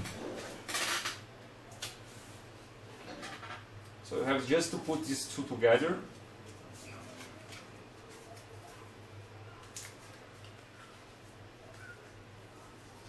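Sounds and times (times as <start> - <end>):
steady low hum: 0.0 - 13.0
paper rustling: 9.5 - 13.0.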